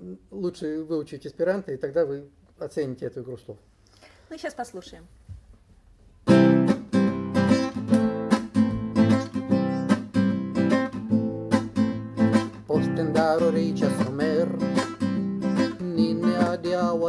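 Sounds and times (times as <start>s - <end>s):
acoustic guitar strumming: 6.2s - 17.0s.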